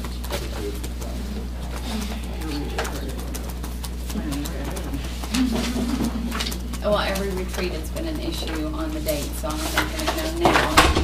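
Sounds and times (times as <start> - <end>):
electrical hum: 0.0 - 11.0
murmuring voices: 0.0 - 11.0.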